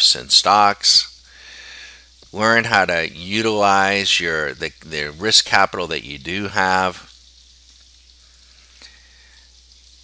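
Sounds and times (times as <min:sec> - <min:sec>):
faint steady hiss: 0:00.0 - 0:10.0
low steady hum: 0:00.0 - 0:10.0.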